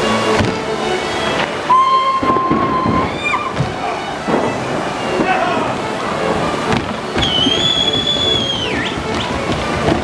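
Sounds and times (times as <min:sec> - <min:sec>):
dancers' feet: 0:00.2 - 0:10.0
shrill whistle: 0:01.7 - 0:03.5, 0:07.2 - 0:09.4.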